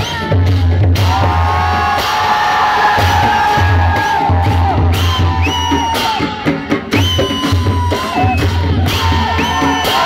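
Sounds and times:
barrel drums beating: 0.4 - 10.0
long drawn-out yells: 1.0 - 5.0
crowd whooping and cheering: 1.0 - 10.0.

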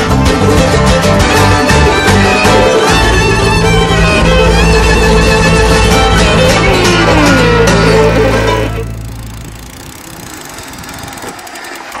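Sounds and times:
fiddle and guitar music: 0.0 - 9.5
bike rolling over asphalt: 2.9 - 12.0
bike freewheel ticking: 4.3 - 12.0.

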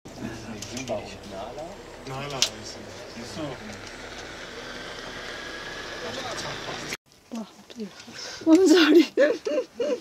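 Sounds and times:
low hum: 0.1 - 7.0.

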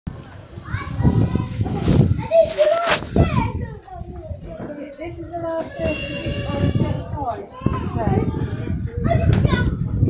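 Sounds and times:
crowd chatter: 0.1 - 10.0
children's voices: 0.2 - 10.0.

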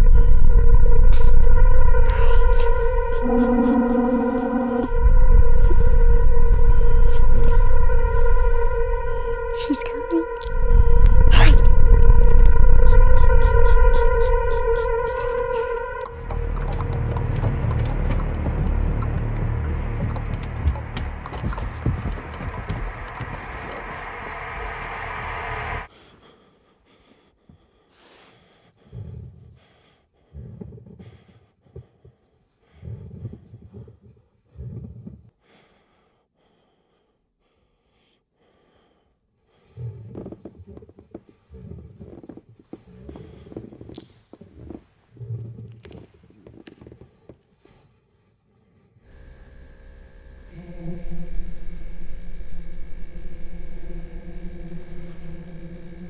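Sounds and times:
loud droning tone: 0.0 - 25.9, 49.1 - 56.0
low rumbling drone: 0.0 - 25.9, 49.1 - 56.0.

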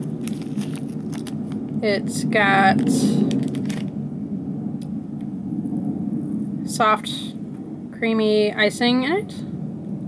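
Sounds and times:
foil wrapper clicks: 0.0 - 1.8, 2.8 - 4.0
airplane flying overhead: 0.0 - 10.0.

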